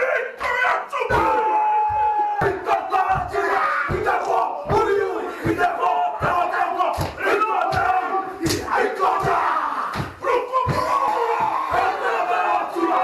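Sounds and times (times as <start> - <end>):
men chanting in unison: 0.0 - 13.0
stamping and slapping thumps: 1.1 - 11.9.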